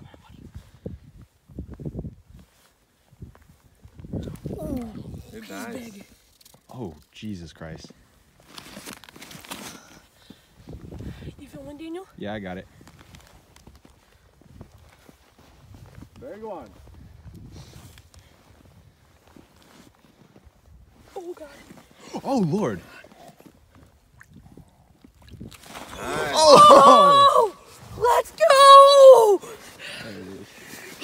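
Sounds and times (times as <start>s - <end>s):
footsteps crunching on snow: 12.7s - 23.6s.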